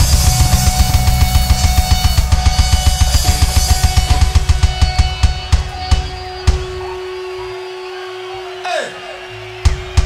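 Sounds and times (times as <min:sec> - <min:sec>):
drum hits: 0:00.0 - 0:06.8
punk rock band playing: 0:00.0 - 0:08.4, 0:09.2 - 0:10.0.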